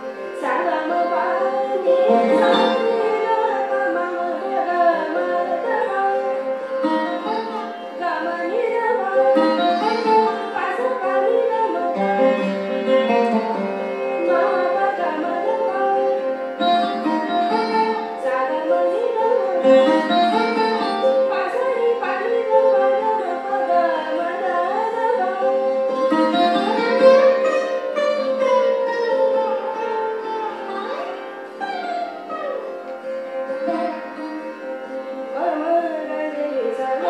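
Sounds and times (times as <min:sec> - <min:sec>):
plucked sarod: 0:00.0 - 0:37.0
woman singing with sliding notes: 0:00.3 - 0:27.3, 0:28.4 - 0:37.0.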